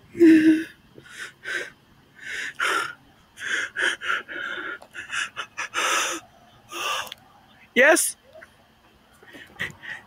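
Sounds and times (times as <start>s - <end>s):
man breathing hard: 0.2s - 7.2s, 9.2s - 10.0s.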